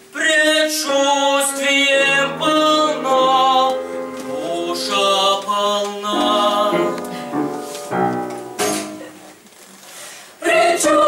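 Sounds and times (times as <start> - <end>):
small choir singing held notes: 0.4 - 9.0, 10.4 - 11.0.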